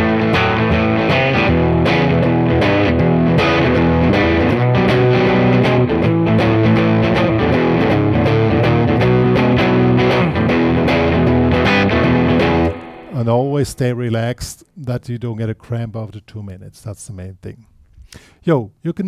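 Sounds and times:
backing track with steady beat: 0.0 - 13.5
electric guitar blues riff: 0.0 - 14.4.

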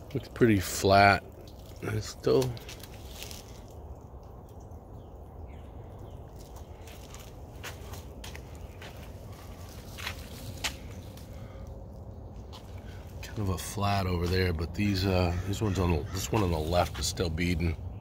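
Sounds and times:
footsteps: 6.5 - 11.3.

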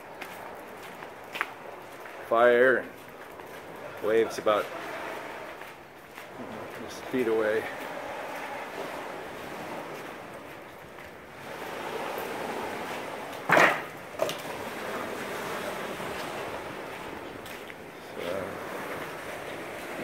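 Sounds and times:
waves washing onto sand: 14.4 - 20.0.

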